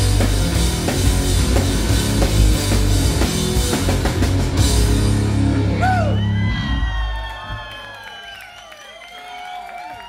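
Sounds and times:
rock band final chord: 0:00.0 - 0:05.9
crowd cheering: 0:05.5 - 0:10.0
whoops and whistles: 0:05.8 - 0:09.5.

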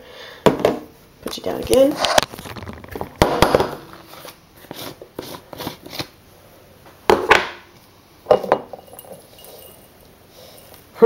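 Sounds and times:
glass jar knocking on countertop: 0:08.3 - 0:09.2.

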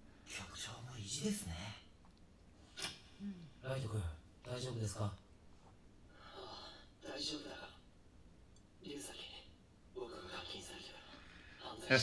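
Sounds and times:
quiet anime dialogue: 0:00.1 - 0:12.0.

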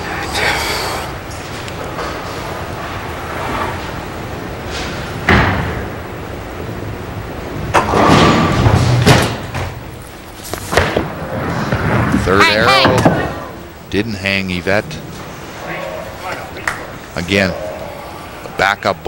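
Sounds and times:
bowling balls knocking: 0:10.6 - 0:13.7.

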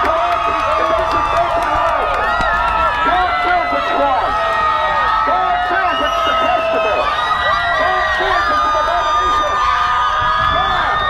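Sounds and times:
crowd cheering and whooping: 0:00.0 - 0:11.0.

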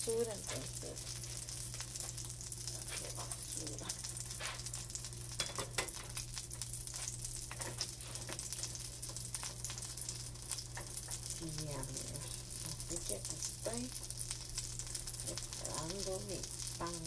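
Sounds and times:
batter sizzling in a pan: 0:00.0 - 0:17.0.

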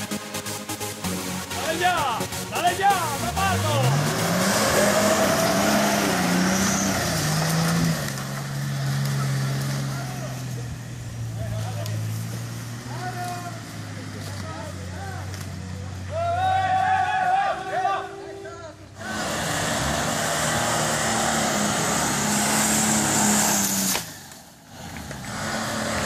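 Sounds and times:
off-road vehicle engine working hard: 0:00.0 - 0:26.0
people calling out: 0:12.8 - 0:19.0.

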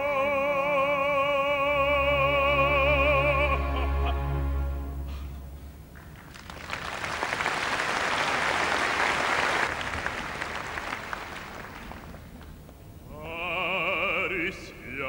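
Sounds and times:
audience applauding: 0:05.9 - 0:12.4.

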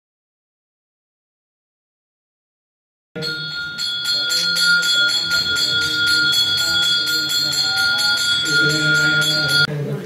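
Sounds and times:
brass hand bell ringing rapidly: 0:03.2 - 0:09.7.

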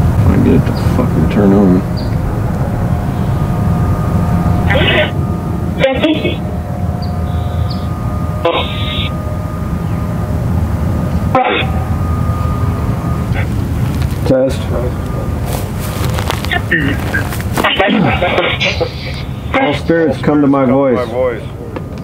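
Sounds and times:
noisy hum with held tones: 0:00.0 - 0:22.0.

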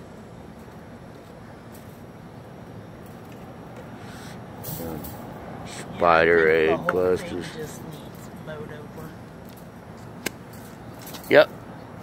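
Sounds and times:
low background hum: 0:00.0 - 0:12.0
man speaking: 0:05.7 - 0:09.2.

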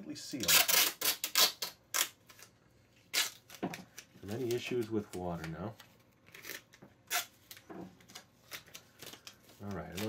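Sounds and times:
tape ripping: 0:00.4 - 0:10.0.

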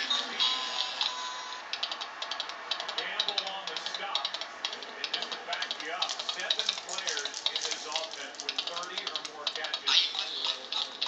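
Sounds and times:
rapid mechanical clicking: 0:01.7 - 0:11.0.

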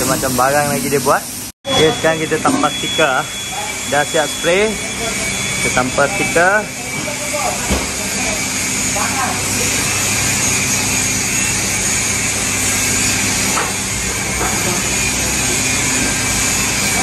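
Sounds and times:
machinery low hum: 0:00.0 - 0:17.0.

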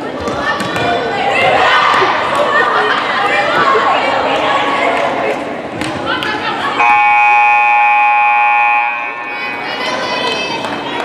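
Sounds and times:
echo in a hall: 0:00.0 - 0:11.0
scoreboard horn blast: 0:06.8 - 0:09.5.

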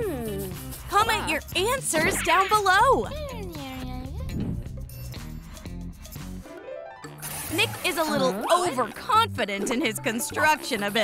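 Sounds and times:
background music with bass line: 0:00.0 - 0:06.5.

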